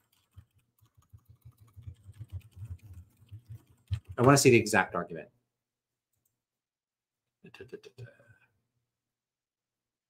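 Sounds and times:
soft keyboard keystrokes: 0.0 - 4.6.

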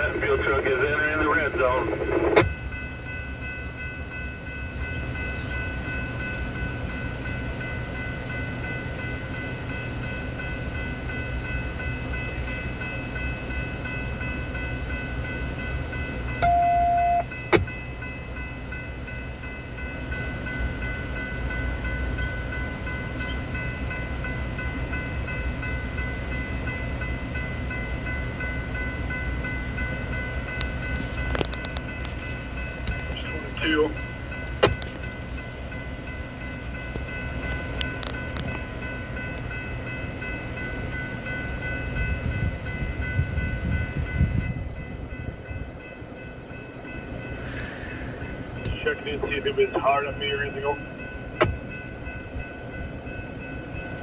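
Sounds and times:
locomotive engines idling: 0.0 - 42.3, 44.9 - 54.0
short beep: 16.4 - 17.3
high whine: 46.8 - 51.6.

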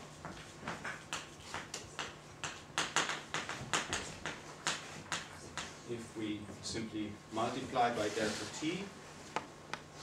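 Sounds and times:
chalk tapping on blackboard: 0.2 - 5.8.

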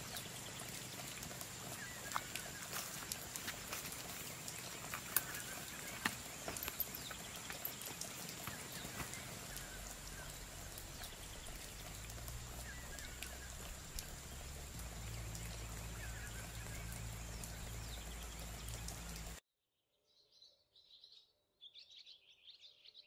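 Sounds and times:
footsteps on dirt trail: 0.0 - 16.9.

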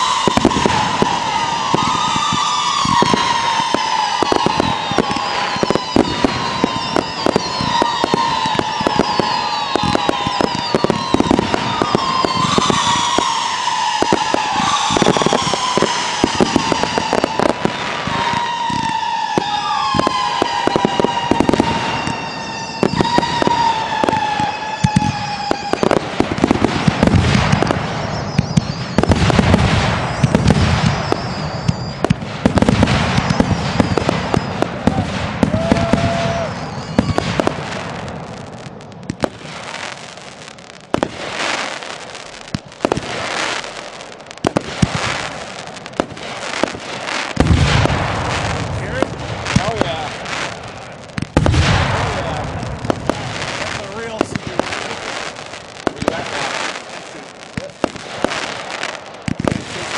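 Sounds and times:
steady whistling tone: 0.0 - 26.0, 27.6 - 29.2, 30.0 - 32.2, 33.2 - 37.4
firework aerial bursts: 0.0 - 59.9
firework crackle: 0.0 - 59.9.

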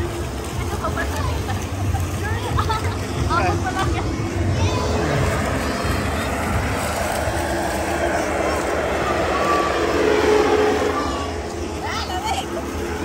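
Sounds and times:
faint voices: 0.0 - 13.0
foam cannon blower rushing air: 1.8 - 13.0.

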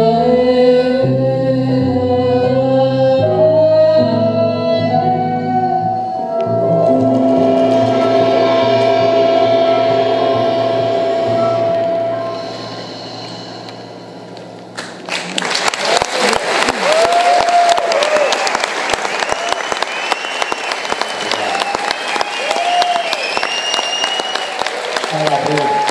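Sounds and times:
acoustic ensemble held chord: 6.2 - 15.1
audience applause and cheers: 14.8 - 25.9.

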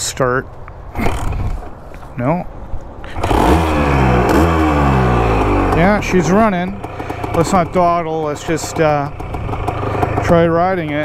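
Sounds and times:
two-stroke engine starting and revving: 1.0 - 1.6, 3.1 - 11.0.

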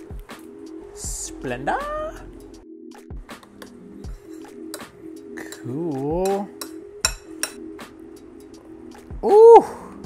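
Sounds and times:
metal spoon clinking glass bowl: 4.2 - 7.6.

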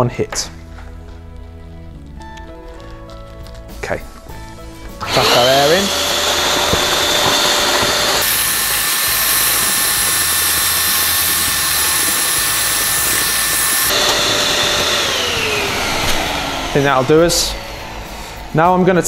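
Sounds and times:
electric balloon inflator running: 4.9 - 19.0.

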